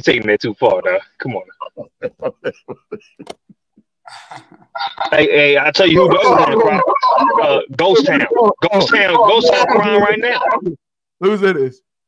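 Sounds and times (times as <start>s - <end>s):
man laughing hard: 1.6s - 3.6s.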